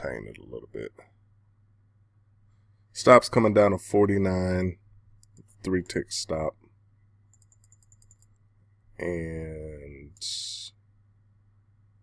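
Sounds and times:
faint computer mouse clicks: 7.3s - 8.4s.

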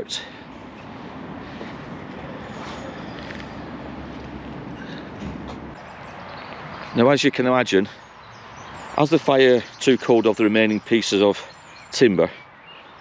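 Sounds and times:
passing vehicle engine and road noise: 0.0s - 13.0s.

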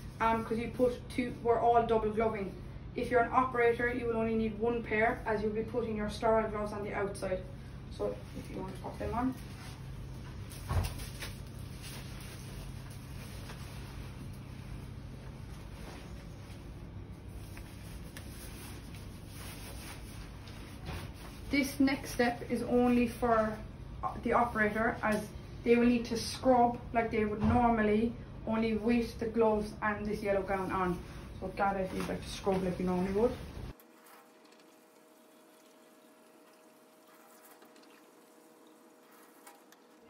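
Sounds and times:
low room hum: 0.0s - 40.0s.

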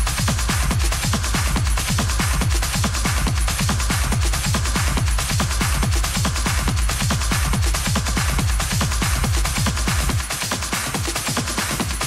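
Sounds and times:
hi-hats and cymbals hiss: 0.0s - 12.0s.

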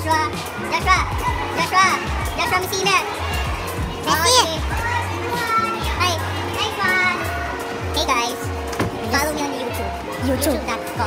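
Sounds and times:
young voices talking and calling out: 0.0s - 11.0s.

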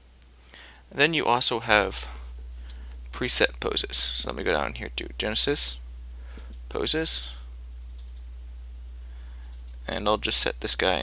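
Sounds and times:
low electrical hum: 0.0s - 11.0s
computer mouse clicks: 7.9s - 8.2s, 9.4s - 9.8s.

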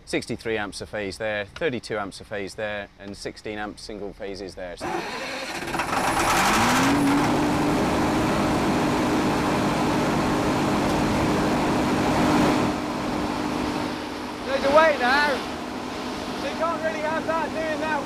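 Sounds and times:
diesel generator engine running: 4.8s - 18.0s
constant hum: 7.1s - 18.0s.

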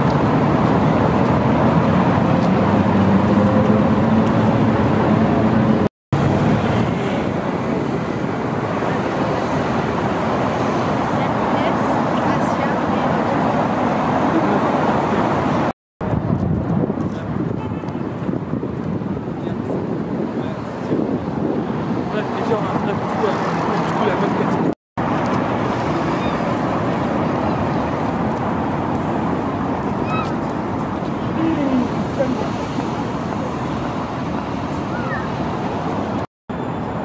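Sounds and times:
traffic noise: 0.0s - 37.0s.

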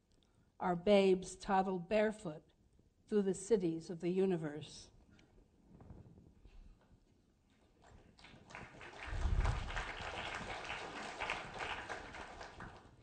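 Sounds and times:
audience applauding: 7.8s - 13.0s.

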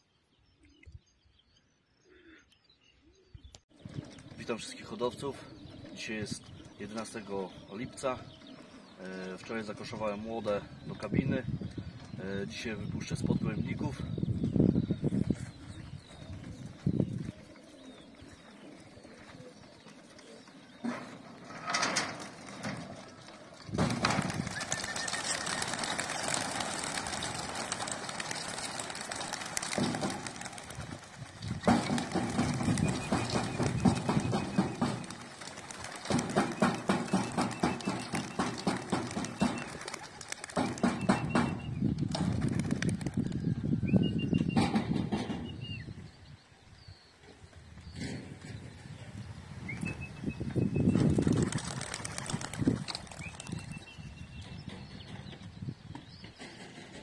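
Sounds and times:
pigeon wings flapping: 22.0s - 43.4s, 50.9s - 53.8s.

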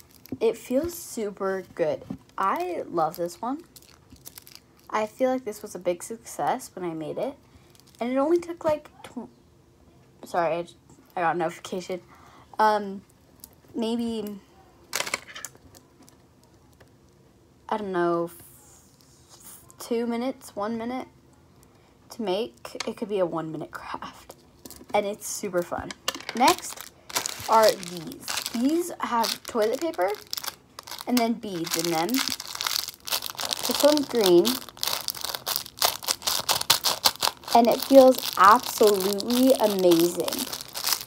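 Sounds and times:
plastic bag crinkling: 0.0s - 0.4s, 2.4s - 5.0s, 26.1s - 41.0s
plastic beads clicking: 26.1s - 41.0s.

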